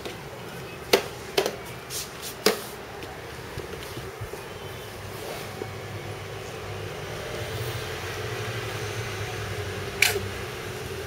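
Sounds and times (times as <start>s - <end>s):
low mechanical hum with hiss: 0.0s - 11.0s.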